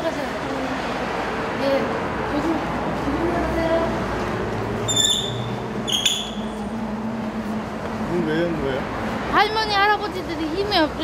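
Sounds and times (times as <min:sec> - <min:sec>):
street traffic: 0:00.0 - 0:11.0
glass door squeaking: 0:04.8 - 0:06.5.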